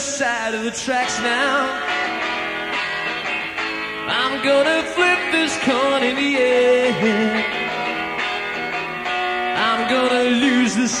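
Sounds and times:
person singing: 0.0 - 2.0, 4.0 - 8.0, 9.5 - 11.0
rock band music: 0.0 - 11.0
strummed guitar chords: 0.0 - 11.0.

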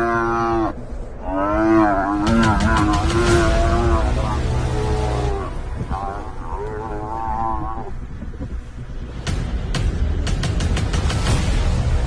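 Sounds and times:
buffalo bellowing: 0.0 - 8.2
low rumble: 0.5 - 12.0.

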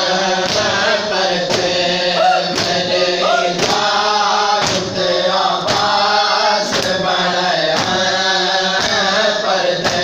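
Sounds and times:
men chanting: 0.0 - 10.0
hands beating on chests: 1.5 - 4.0.

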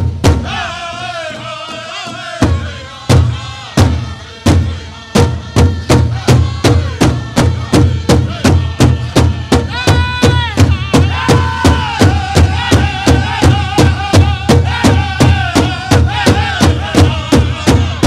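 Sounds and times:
big drum steady beat: 0.0 - 1.0, 1.7 - 18.0
men singing: 0.4 - 18.0.

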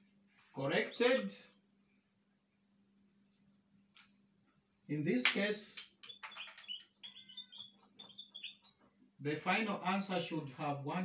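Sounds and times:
marker squeaking on whiteboard: 0.7 - 1.4, 5.8 - 9.0.

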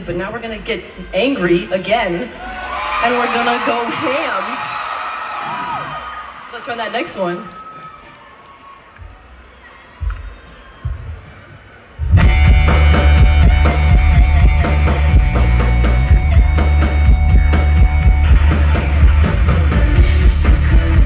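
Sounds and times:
live rock band playing: 12.2 - 21.0.

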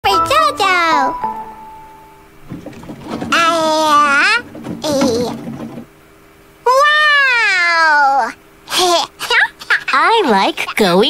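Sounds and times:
faint soft rattling: 2.4 - 6.0.

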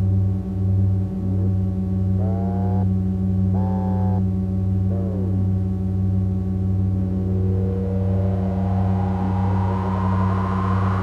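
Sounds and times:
synthesizer low drone: 0.0 - 11.0
short sagging synth tones: 6.8 - 11.0
synth pitch sweeps: 6.8 - 11.0.

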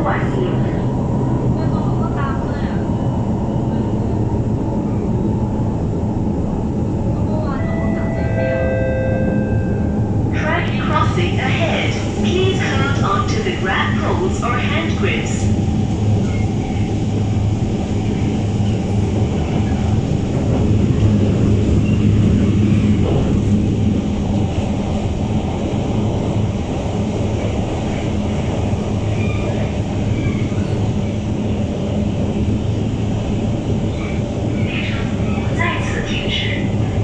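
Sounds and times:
train low hum: 0.0 - 37.0
wheels rumbling on track: 0.0 - 37.0.

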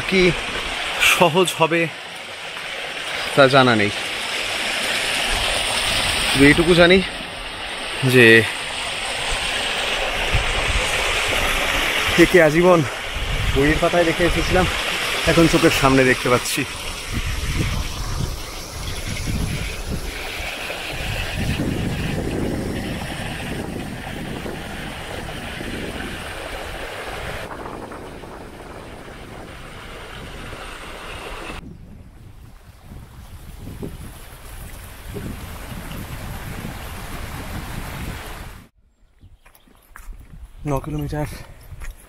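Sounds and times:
wind gusting across microphone: 0.0 - 39.4, 40.0 - 42.0.

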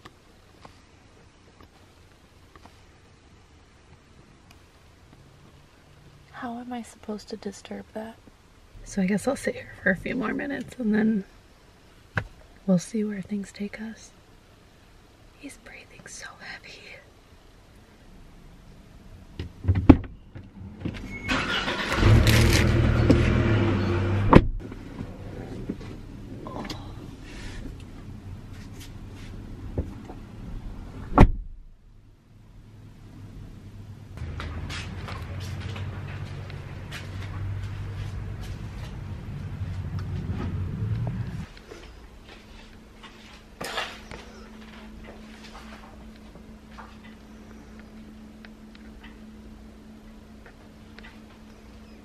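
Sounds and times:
rustling and handling noise: 0.0 - 3.2, 24.7 - 30.4, 34.2 - 51.8
steady low hum: 0.0 - 21.3, 21.9 - 52.0
car doors thumping shut: 19.4 - 20.2, 24.2 - 24.6, 31.1 - 31.6.

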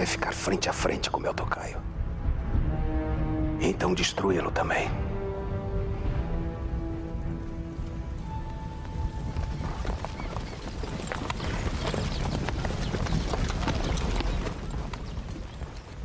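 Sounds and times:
orchestral film music: 0.0 - 10.8
horse hooves clattering: 5.8 - 16.0.

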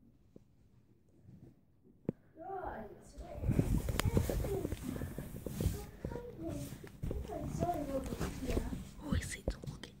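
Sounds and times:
child whispering: 3.2 - 10.0.

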